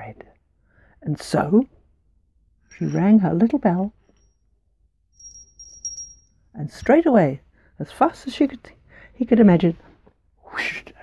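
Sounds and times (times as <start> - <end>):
small handbell tinkling: 2.6 - 4.5, 5.1 - 6.5.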